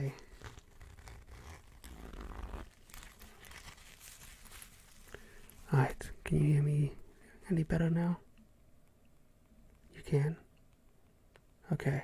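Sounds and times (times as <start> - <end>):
zipper slowly opening: 0.0 - 5.1
mask handling rumble: 0.0 - 6.6.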